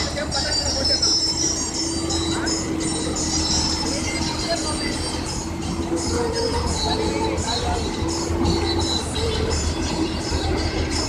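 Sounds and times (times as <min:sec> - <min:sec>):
combine harvester engine drone: 0:00.0 - 0:11.0
machinery high-pitched whining: 0:00.0 - 0:11.0.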